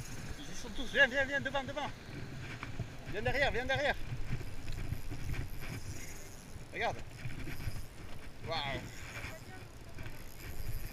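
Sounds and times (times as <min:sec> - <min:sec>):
fishing reel winding: 0:00.0 - 0:10.9.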